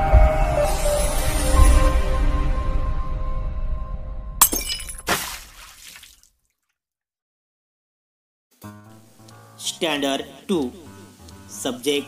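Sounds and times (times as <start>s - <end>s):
glass-like crash sound effects: 4.4s - 5.5s.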